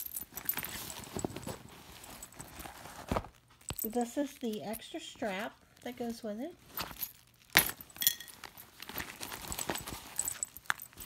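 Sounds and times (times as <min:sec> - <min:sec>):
handbag contents rustling: 0:00.0 - 0:11.0.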